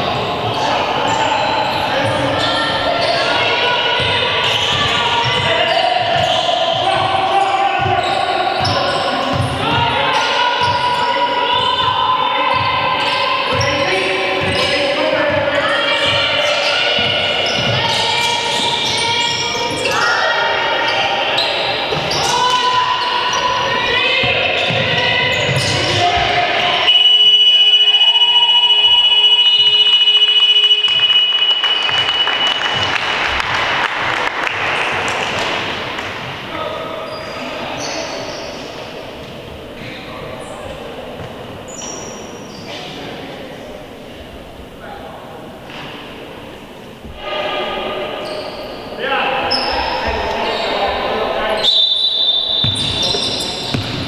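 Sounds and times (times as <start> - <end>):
players and crowd voices: 0.0 - 54.0
scoreboard buzzer tone: 26.8 - 32.9
basketball dribbling on hard court: 52.6 - 54.0.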